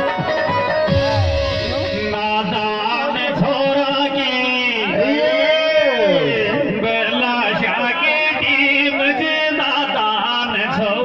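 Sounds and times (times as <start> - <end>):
man singing folk song through loudspeakers: 1.6 - 11.0.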